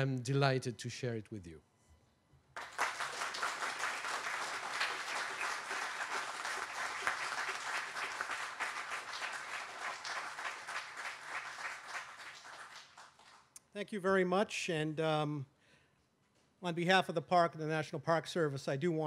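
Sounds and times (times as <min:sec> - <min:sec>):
audience applauding: 0:02.6 - 0:13.4.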